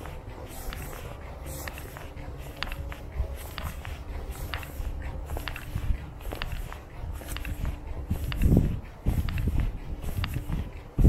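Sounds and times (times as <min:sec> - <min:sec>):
low continuous rumble: 0:00.0 - 0:11.0.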